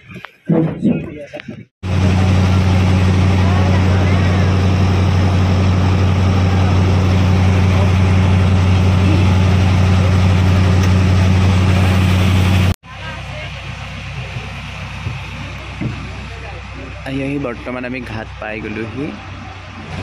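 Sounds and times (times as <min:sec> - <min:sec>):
boat engine droning: 0:01.8 - 0:20.0
water rushing along hull: 0:01.8 - 0:20.0.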